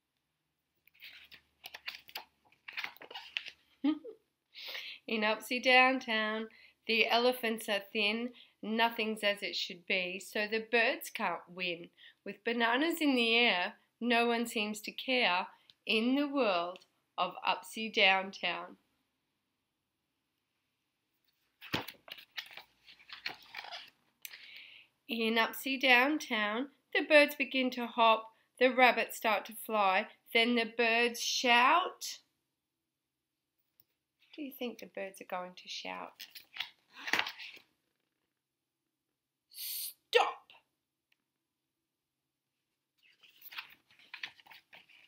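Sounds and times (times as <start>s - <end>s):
book pages turning: 0.9s - 3.8s, 21.2s - 24.5s, 36.1s - 38.2s, 43.0s - 45.0s.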